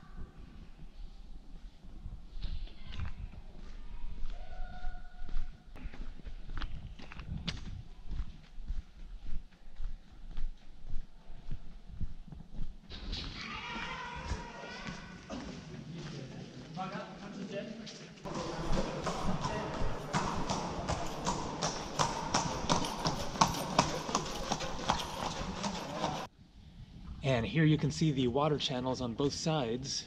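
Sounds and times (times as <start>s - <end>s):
footsteps on stone: 5.3s - 11.1s
people's voices: 13.4s - 26.3s.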